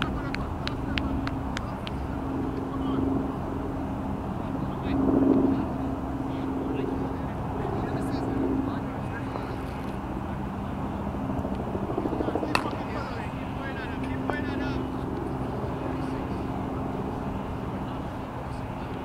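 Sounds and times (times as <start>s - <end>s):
distant engine drone: 0.0s - 19.0s
faint voices of players: 0.0s - 19.0s
bat hitting cricket ball: 12.5s - 12.8s.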